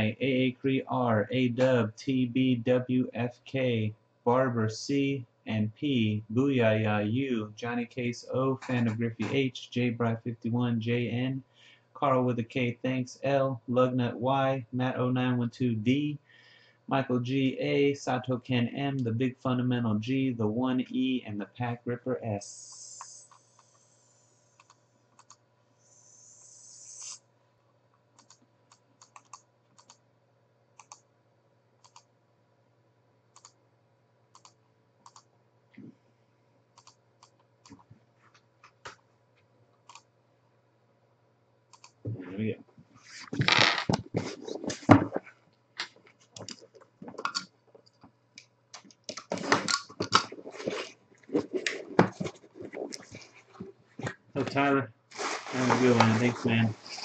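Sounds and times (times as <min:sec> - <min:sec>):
computer clicks: 0:28.2 - 0:30.0, 0:30.8 - 0:31.0, 0:31.8 - 0:32.1, 0:33.4 - 0:33.6, 0:34.4 - 0:35.3, 0:36.8 - 0:37.9
cardboard box scraping and rustling: 0:55.1 - 0:57.0.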